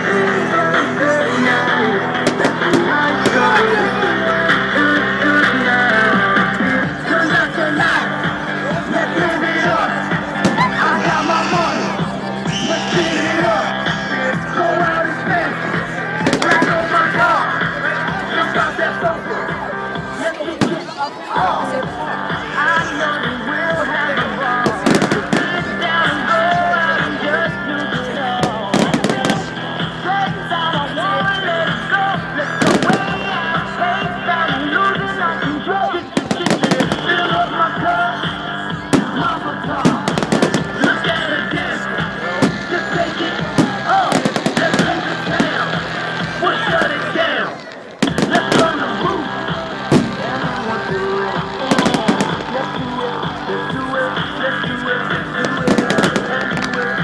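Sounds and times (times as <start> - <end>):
loud pop music: 0.0 - 57.0
fireworks bangs: 28.4 - 29.5, 32.6 - 33.2, 39.8 - 41.2, 43.5 - 45.6, 47.9 - 48.8, 49.7 - 50.6, 51.7 - 52.7, 55.4 - 57.0.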